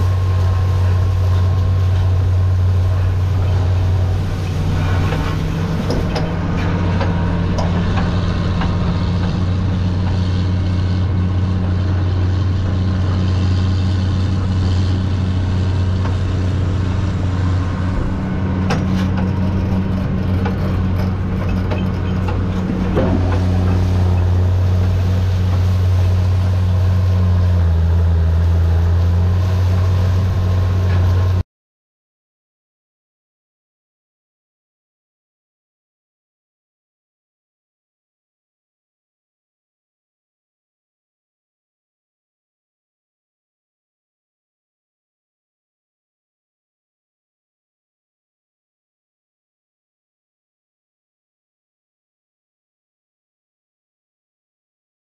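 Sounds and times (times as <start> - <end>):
tractor diesel engine droning: 0.0 - 31.4.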